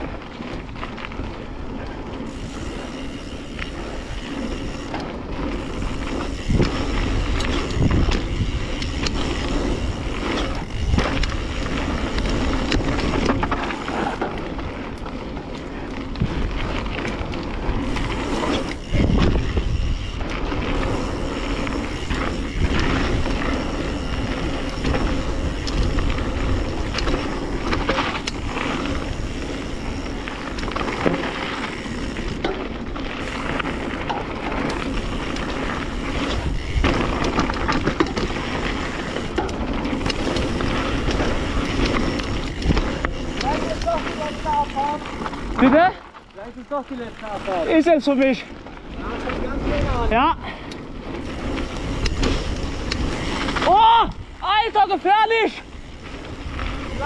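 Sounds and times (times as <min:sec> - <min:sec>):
bike rattling and knocking: 0:00.0 - 0:57.0
tyres rolling over stony dirt: 0:00.0 - 0:57.0.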